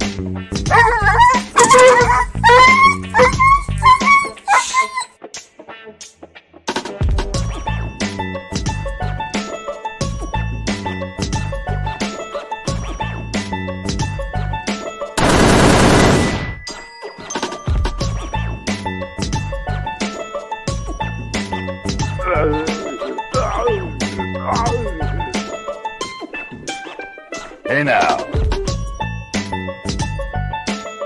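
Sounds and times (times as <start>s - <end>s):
background music with bass: 0.0s - 4.5s, 5.2s - 14.7s, 17.8s - 31.0s
dog yelping: 0.7s - 5.2s.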